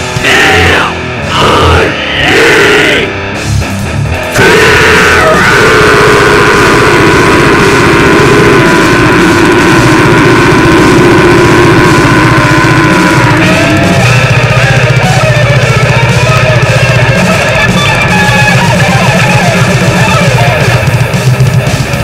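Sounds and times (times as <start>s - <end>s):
death metal band playing: 0.0s - 22.0s.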